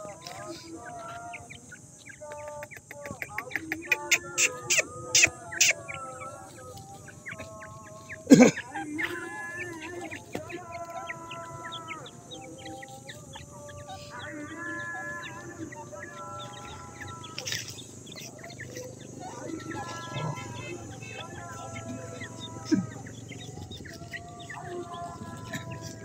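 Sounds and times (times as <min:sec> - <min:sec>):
chicks chirping: 0:00.0 - 0:26.0.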